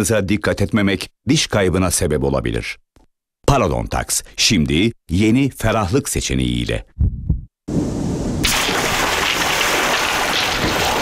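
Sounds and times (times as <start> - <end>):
low thumps: 7.0 - 7.5
water rushing splash: 8.4 - 11.0.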